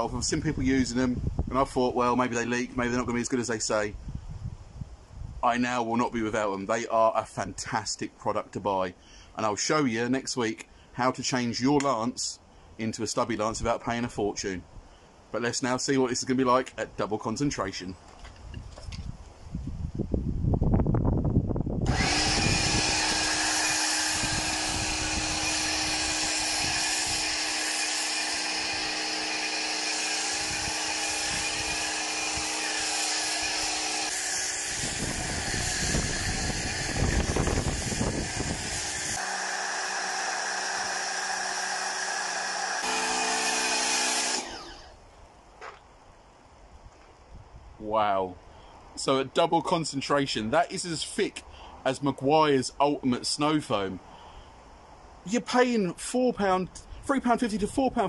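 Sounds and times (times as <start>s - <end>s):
pressure washer motor whine: 21.8s - 45.0s
foam spray hiss: 22.4s - 44.2s.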